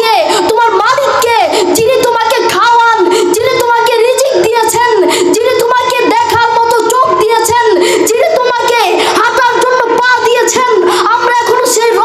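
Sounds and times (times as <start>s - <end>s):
boy preaching in chanted delivery: 0.0s - 12.0s.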